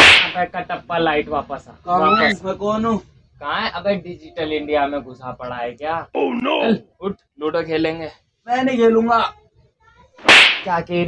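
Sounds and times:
slap across the face: 0.0 - 0.4, 10.2 - 10.7
man's voice: 1.9 - 2.6, 5.4 - 6.8.

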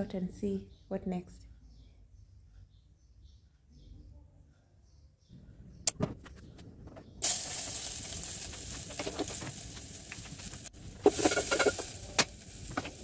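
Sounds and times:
gas stove hissing: 7.2 - 13.0.

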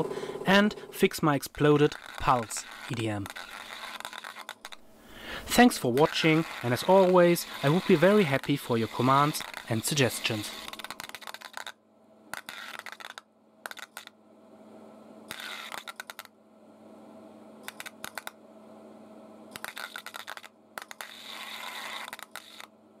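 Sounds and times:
steady low hum: 0.0 - 11.1, 13.3 - 21.8
electrodes sparking crackling: 1.6 - 4.8, 5.5 - 11.8, 19.6 - 22.6.

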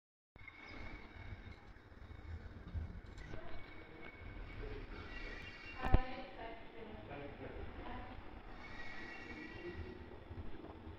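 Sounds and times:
low uneven rumble: 0.4 - 10.9.

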